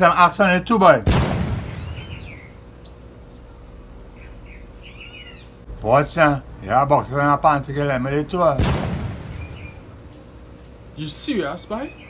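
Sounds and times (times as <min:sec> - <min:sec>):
low steady hum: 0:00.0 - 0:12.0
faint bird chirps: 0:01.7 - 0:03.0, 0:04.1 - 0:05.6, 0:09.3 - 0:09.9.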